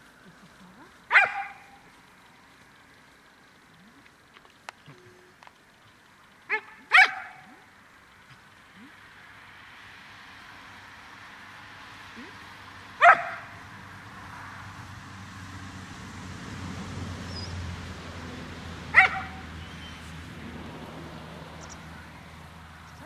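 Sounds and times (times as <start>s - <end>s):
dog barking sharply: 1.1s - 1.8s, 6.5s - 7.4s, 13.0s - 13.6s, 18.9s - 19.5s.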